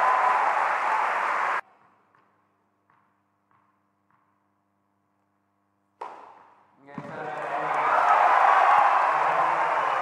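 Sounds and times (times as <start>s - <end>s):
crowd cheering and applauding: 0.0s - 1.6s, 7.1s - 10.0s.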